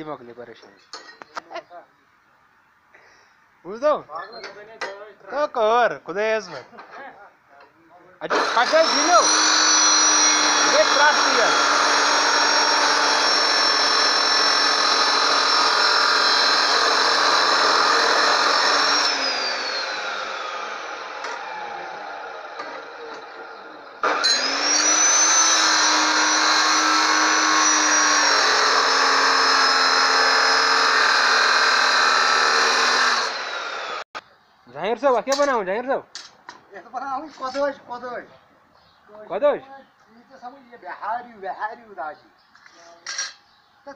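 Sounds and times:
cut-off saw cutting steel: 0:08.3 - 0:34.1.

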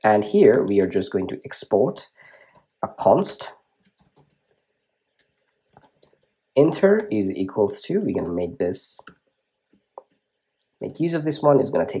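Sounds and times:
faint keyboard clicks: 0:02.4 - 0:03.1, 0:03.8 - 0:08.4, 0:09.0 - 0:11.1.

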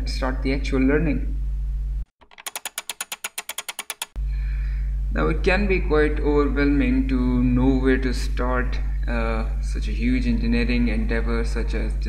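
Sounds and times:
low electrical hum: 0:00.0 - 0:02.1, 0:04.2 - 0:12.0
rapid ticking clicks: 0:02.2 - 0:04.2.

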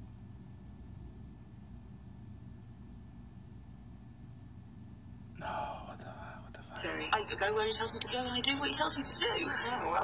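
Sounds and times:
person whispering: 0:05.4 - 0:06.8
woman speaking: 0:06.7 - 0:10.0.

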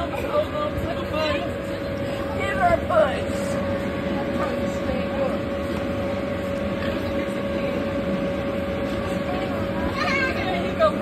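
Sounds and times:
electric blower fan droning: 0:00.0 - 0:11.0.

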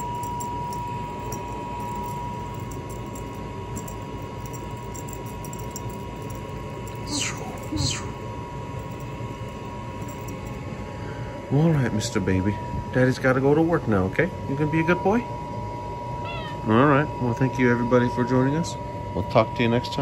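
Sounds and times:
water heater humming: 0:00.0 - 0:20.0.

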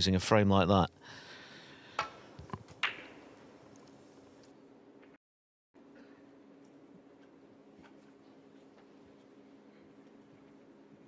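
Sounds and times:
snooker balls clicking: 0:02.0 - 0:03.2.

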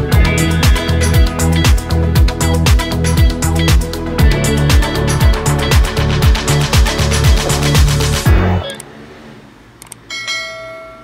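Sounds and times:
bell ding: 0:10.1 - 0:11.0.

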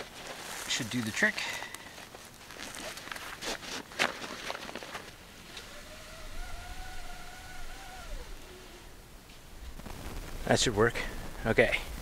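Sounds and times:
nylon sack rustling: 0:00.0 - 0:05.2
long whistle-like tone: 0:05.6 - 0:08.9.

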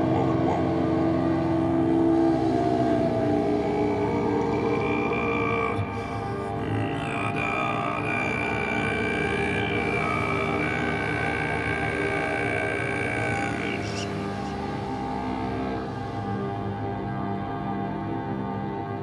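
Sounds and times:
ambient drone music: 0:00.0 - 0:19.0.

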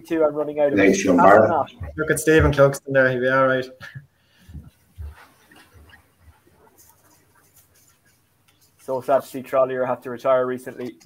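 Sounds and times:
light rustling: 0:04.4 - 0:09.6.

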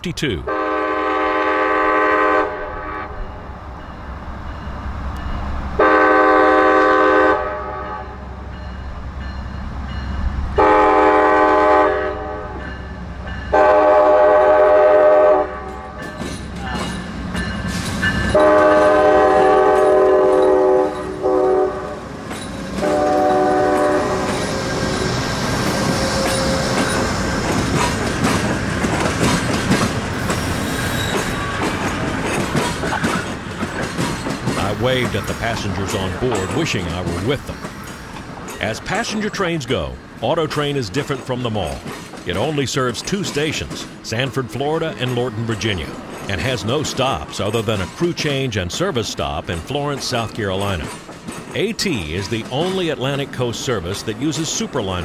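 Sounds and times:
diesel locomotive engine rumble: 0:00.0 - 0:55.0
train air horn blasts: 0:00.5 - 0:03.2, 0:05.8 - 0:08.2, 0:10.6 - 0:12.6, 0:13.5 - 0:15.8, 0:18.3 - 0:22.0, 0:22.8 - 0:24.8
train wheel clatter: 0:15.6 - 0:21.3, 0:22.1 - 0:55.0.

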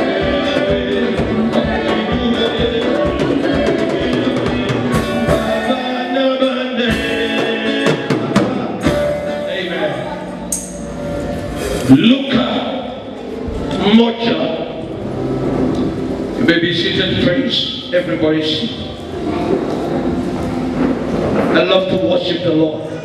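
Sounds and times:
drum beat: 0:00.0 - 0:05.9
man singing into microphone: 0:00.0 - 0:10.4
choir singing: 0:00.0 - 0:13.6
band playing: 0:00.0 - 0:21.5.

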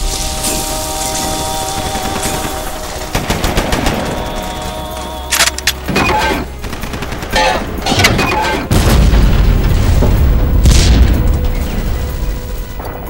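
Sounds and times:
music: 0:00.0 - 0:13.0
rumble of explosions: 0:00.0 - 0:13.0
sharp gunshots: 0:05.3 - 0:09.7.

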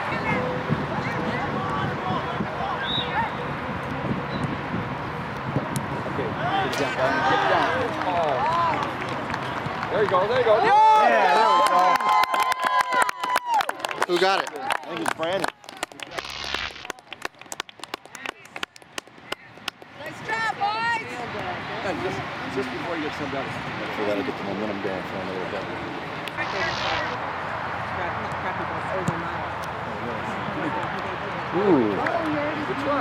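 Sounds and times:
wind noise on microphone: 0:00.0 - 0:06.4
scattered handclaps: 0:07.6 - 0:10.3, 0:11.6 - 0:20.0.

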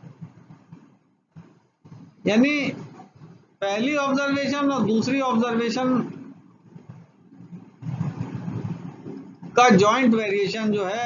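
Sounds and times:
low uneven background rumble: 0:00.0 - 0:11.0.

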